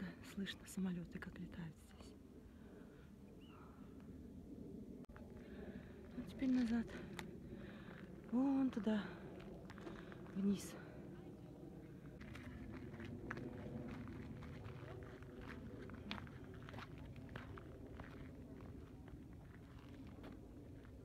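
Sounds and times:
low steady rumble: 0:00.0 - 0:21.0
footsteps on gravel: 0:12.2 - 0:21.0.

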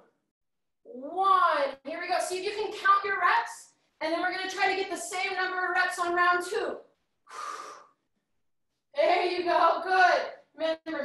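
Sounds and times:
woman straining breath: 0:07.3 - 0:08.0.

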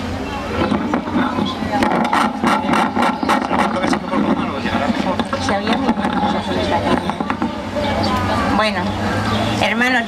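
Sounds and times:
indistinct low talking: 0:00.0 - 0:10.0.

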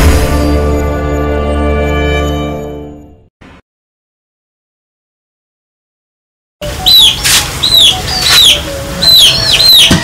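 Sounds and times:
birds chirping: 0:06.6 - 0:10.0.

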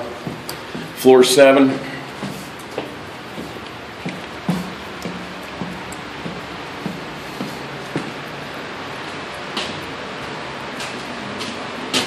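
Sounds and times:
footsteps on stairs: 0:00.0 - 0:12.0.

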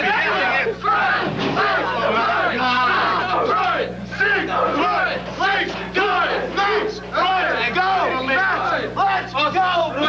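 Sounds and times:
crowd shouting and talking: 0:00.0 - 0:10.0
steady low hum: 0:00.0 - 0:10.0.

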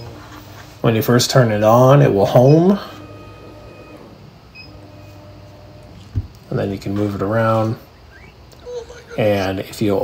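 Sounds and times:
low steady hum: 0:00.0 - 0:10.0
stepper motors whining: 0:00.0 - 0:10.0.

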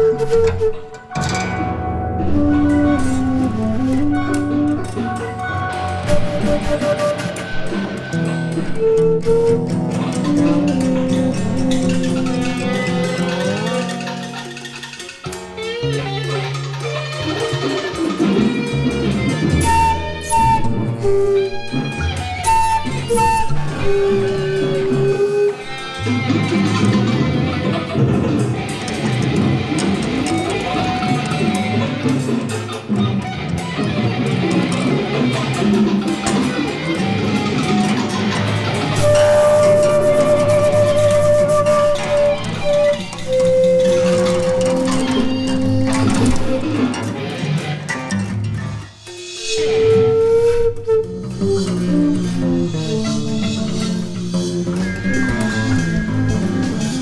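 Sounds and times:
flute: 0:00.0 - 0:14.6, 0:18.8 - 0:28.0, 0:34.7 - 0:47.1, 0:49.2 - 0:57.0
balalaika: 0:00.0 - 0:57.0
electric guitar: 0:00.0 - 0:57.0.

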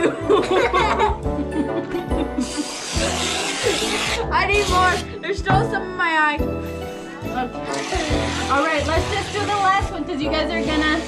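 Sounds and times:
whipped-cream can spraying: 0:02.4 - 0:05.0.

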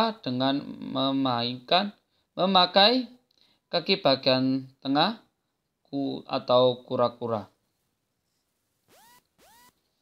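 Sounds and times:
short faint rising tones: 0:08.9 - 0:09.8.

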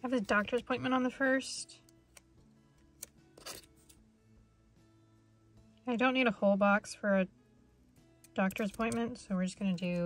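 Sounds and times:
faint background music: 0:00.0 - 0:10.0
scissors clicking and snipping: 0:08.2 - 0:09.1.

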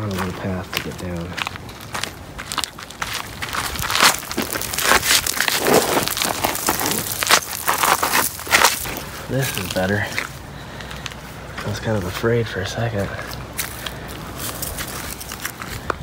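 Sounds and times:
footsteps on loose gravel: 0:00.0 - 0:16.0
irregular crackles: 0:01.4 - 0:11.2, 0:13.2 - 0:16.0.

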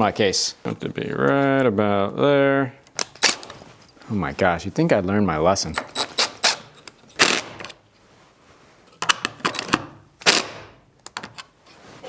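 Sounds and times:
impact driver driving screws: 0:05.8 - 0:07.7, 0:09.6 - 0:10.7.

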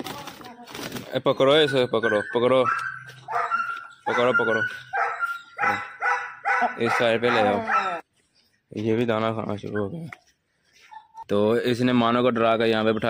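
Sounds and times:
dog barking: 0:02.1 - 0:08.0.

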